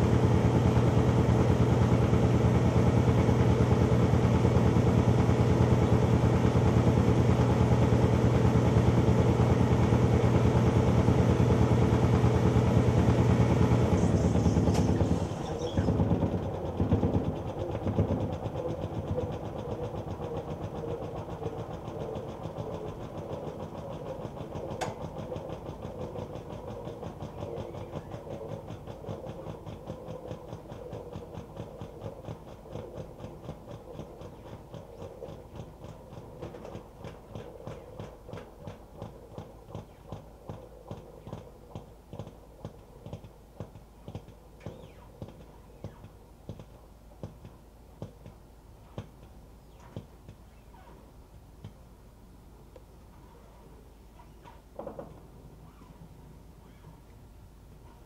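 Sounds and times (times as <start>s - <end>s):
washer motor humming: 0.0s - 43.2s.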